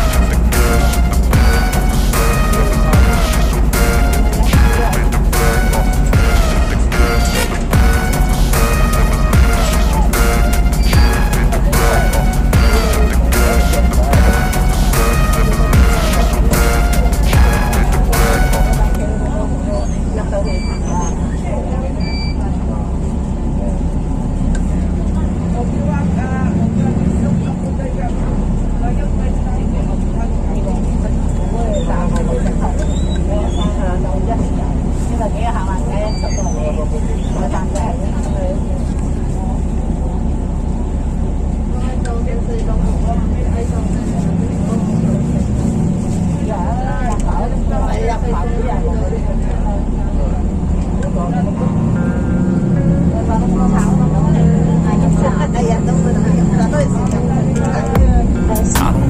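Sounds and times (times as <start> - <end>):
people talking indistinctly: 0.0 - 59.0
road traffic engine rumble: 0.0 - 59.0.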